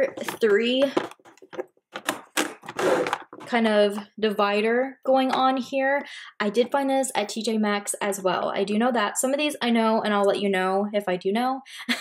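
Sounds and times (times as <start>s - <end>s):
plastic scraping rustle: 0.0s - 3.6s.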